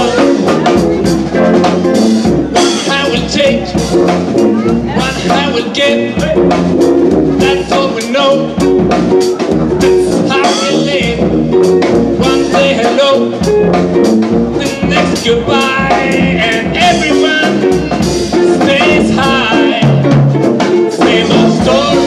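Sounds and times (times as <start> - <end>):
man singing: 0.0 - 1.7, 2.5 - 6.7, 7.4 - 8.9, 9.8 - 13.8, 14.5 - 22.0
drum kit beat: 0.0 - 22.0
jazz band playing: 0.0 - 22.0.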